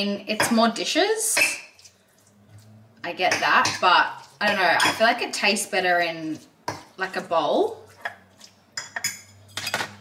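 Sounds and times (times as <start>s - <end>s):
fork scraping and clinking on bowl: 7.9s - 10.0s.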